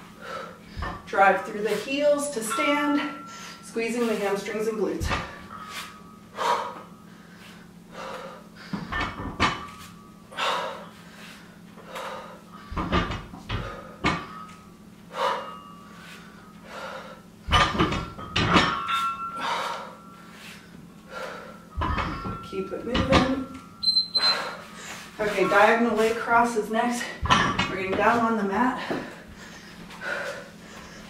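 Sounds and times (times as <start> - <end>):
hard breathing: 0.0 - 2.0, 5.1 - 9.2, 9.9 - 12.9, 13.5 - 17.5, 19.2 - 21.8, 24.2 - 25.5, 28.7 - 31.0.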